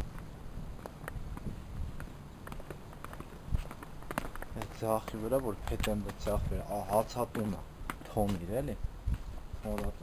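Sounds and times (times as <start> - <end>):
footsteps on concrete: 0.0 - 10.0.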